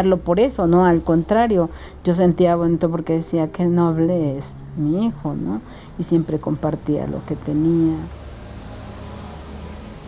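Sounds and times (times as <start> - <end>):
low room hum and rumble: 0.0 - 8.8.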